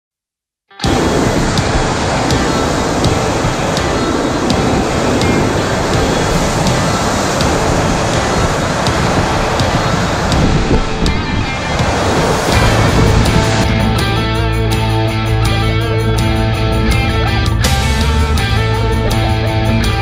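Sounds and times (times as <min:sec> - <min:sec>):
whitewater roaring: 0:00.8 - 0:20.0
music with light regular beat: 0:01.6 - 0:20.0.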